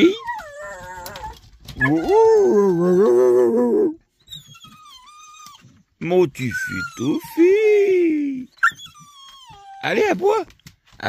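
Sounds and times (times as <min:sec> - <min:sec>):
dog howling: 0:00.0 - 0:04.0
dog whining: 0:00.0 - 0:10.2.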